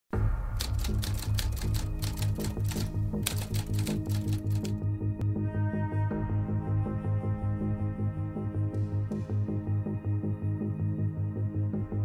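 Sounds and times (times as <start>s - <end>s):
typewriter keys clacking: 0.6s - 4.8s.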